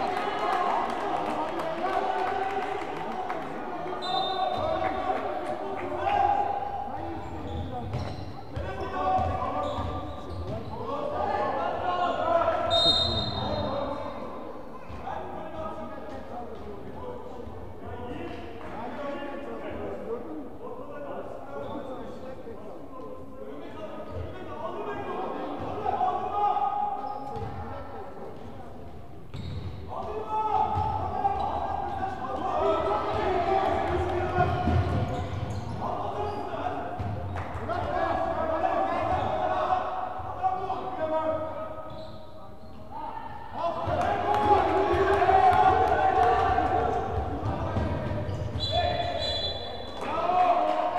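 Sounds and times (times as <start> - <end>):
referee's whistle: 4.0 - 4.7, 12.7 - 13.8, 48.3 - 50.0
spectators' voices: 43.4 - 50.9.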